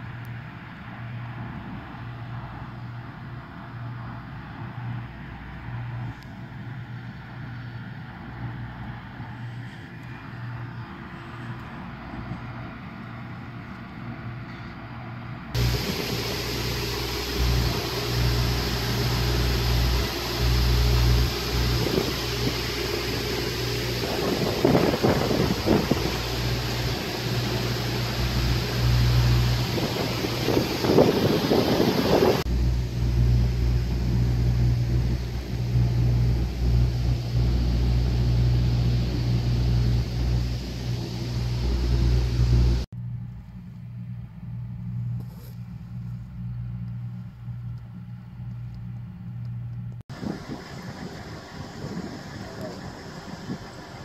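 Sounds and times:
heavy engine rumbling: 14.1s - 43.4s, 44.1s - 54.0s.

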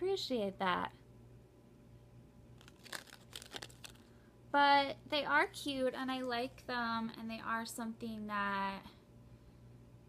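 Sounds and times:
low steady hum: 0.0s - 10.0s
cardboard card clicks and rustles: 2.6s - 4.1s.

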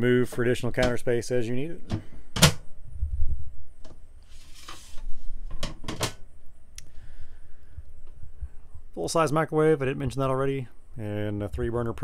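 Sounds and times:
scraping rustle: 4.2s - 5.7s.

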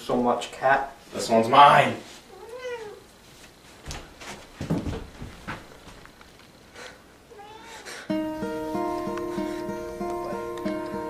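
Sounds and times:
cat meowing: 2.3s - 3.1s, 7.3s - 8.1s.

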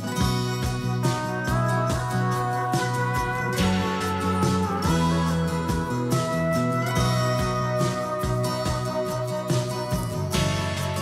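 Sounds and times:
instrumental music with guitar: 0.0s - 11.0s.

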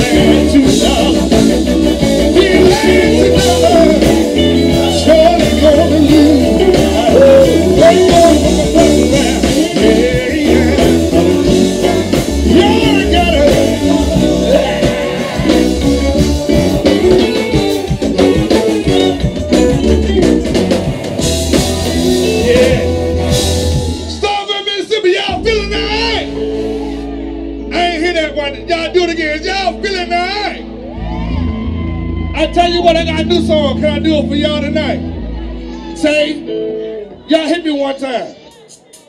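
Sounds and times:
electric guitar: 0.0s - 24.4s, 25.3s - 37.3s
blues band playing: 0.0s - 39.0s.

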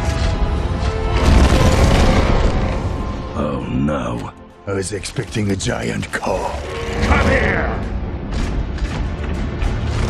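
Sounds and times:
orchestral music: 0.0s - 10.0s
booming fire blast: 1.1s - 3.2s.

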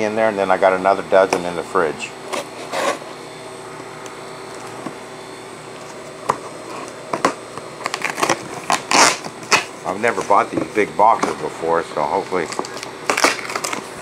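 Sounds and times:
cardboard scraping and tearing: 2.3s - 3.1s, 7.8s - 11.5s, 12.4s - 14.0s.

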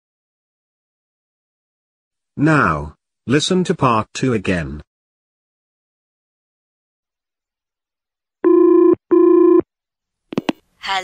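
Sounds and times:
telephone ringing: 8.4s - 9.6s.

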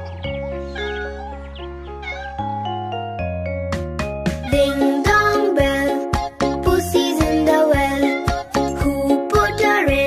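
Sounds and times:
instrumental children's music: 0.0s - 10.0s
cat meowing: 0.7s - 2.6s.

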